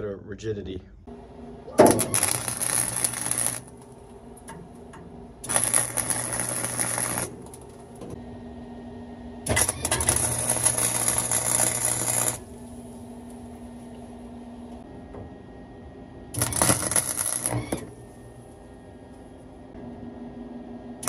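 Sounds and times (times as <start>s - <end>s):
low hum: 0.8s - 21.0s
welding arc crackling: 1.7s - 8.2s, 9.4s - 14.3s, 16.3s - 18.6s.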